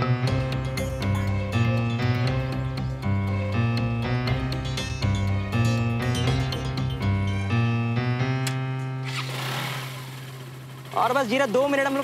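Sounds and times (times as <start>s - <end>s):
sustained keyboard chords: 0.0s - 9.1s.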